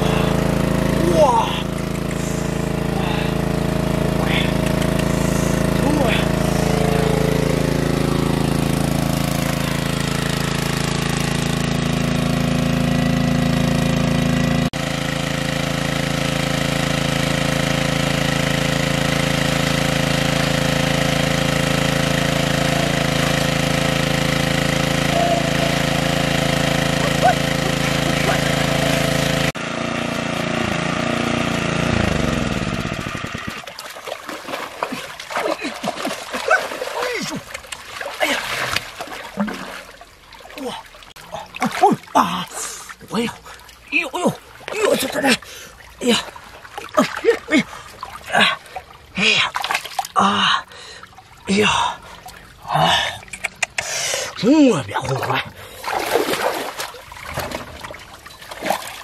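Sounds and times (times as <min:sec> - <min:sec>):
gasoline water pump running: 0:00.0 - 0:59.0.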